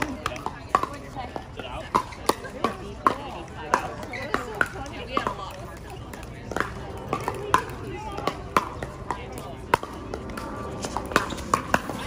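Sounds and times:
paddles hitting plastic ball: 0.0 - 12.0.

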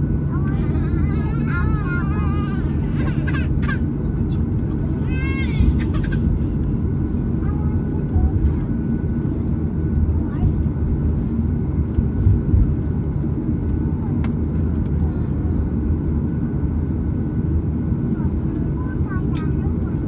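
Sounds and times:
airframe rolling on taxiway: 0.0 - 20.0
airliner engines idling: 0.0 - 20.0.

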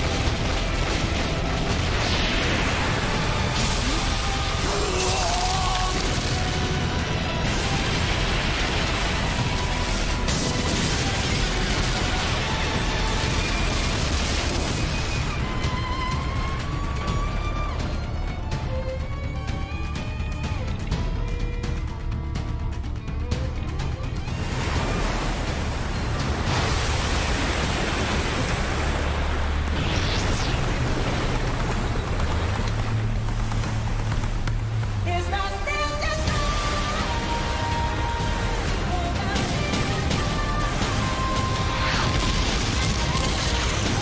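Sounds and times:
battle music: 0.0 - 27.2, 31.5 - 44.0.

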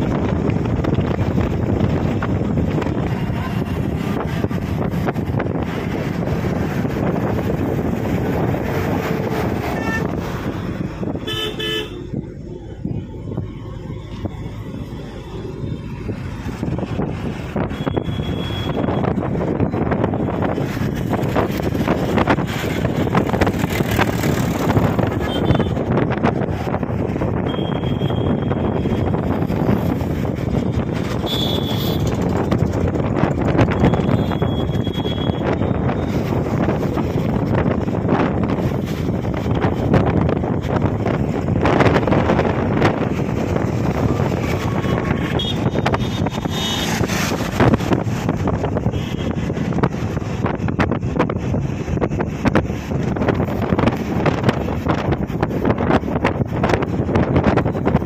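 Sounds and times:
road traffic noise: 0.0 - 58.0
wind on microphone: 0.0 - 58.0.

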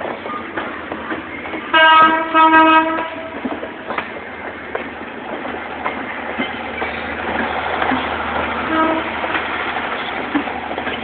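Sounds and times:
train coaches clattering over rail joints: 0.0 - 11.0
locomotive horn blasts: 1.7 - 3.4, 8.7 - 9.3.

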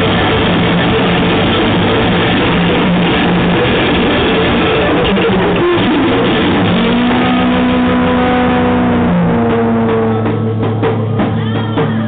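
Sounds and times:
distorted electric guitar notes: 0.0 - 12.0
live band music: 0.0 - 12.0.

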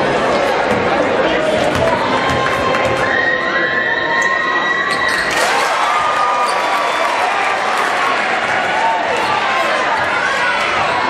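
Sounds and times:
crowd cheering and shouting: 0.0 - 11.0.

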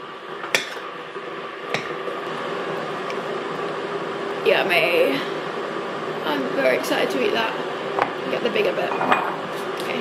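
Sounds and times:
electric kettle heating: 0.0 - 10.0.

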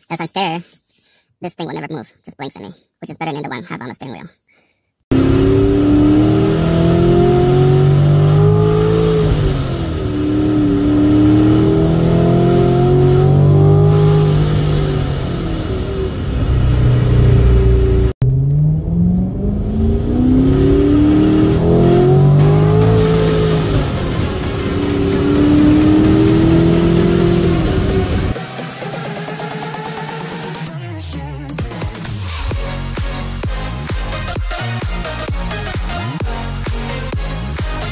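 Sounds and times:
car engine revving through gears: 5.1 - 28.4
music: 22.4 - 37.9.

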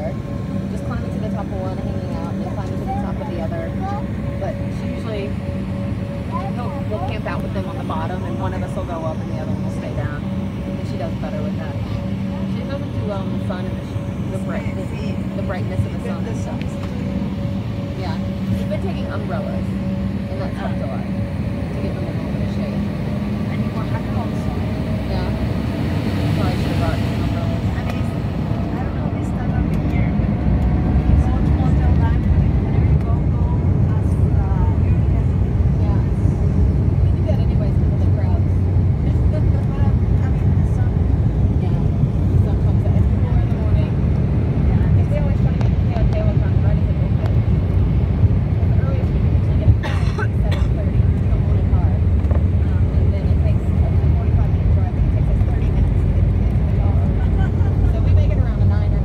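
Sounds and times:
jet airliner cabin rumble: 0.0 - 59.0.

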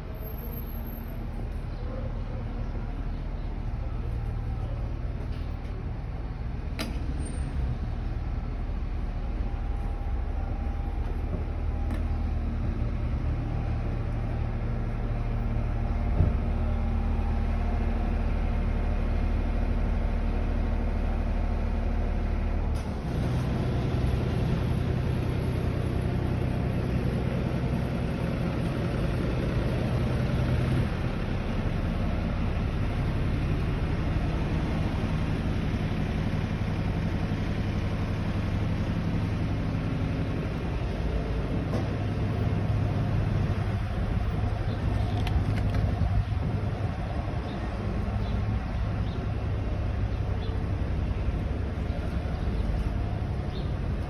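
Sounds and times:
street traffic: 0.0 - 54.0
vehicle engine idling: 0.0 - 54.0.

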